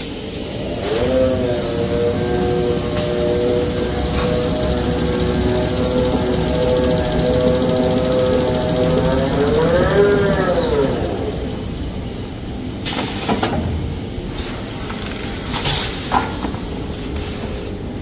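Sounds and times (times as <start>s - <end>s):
machine drive whine: 0.0s - 12.8s.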